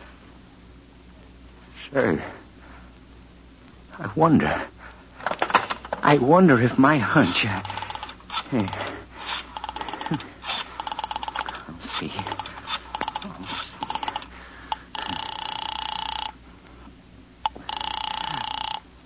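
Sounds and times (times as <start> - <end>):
telephone ringing: 7.2 - 8.9, 9.6 - 16.4, 17.4 - 18.9
rotary dial clicks: 7.6 - 8.2.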